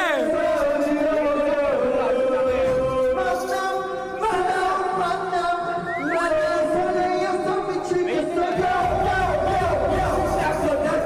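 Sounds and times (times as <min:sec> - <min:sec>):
man singing into microphone: 0:00.0 - 0:11.0.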